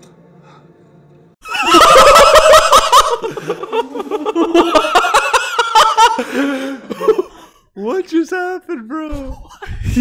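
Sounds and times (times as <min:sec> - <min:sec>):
men laughing: 0:01.4 - 0:07.6.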